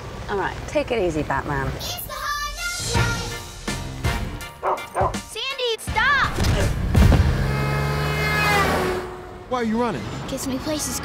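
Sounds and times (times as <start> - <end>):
van speeding past: 6.7 - 10.8.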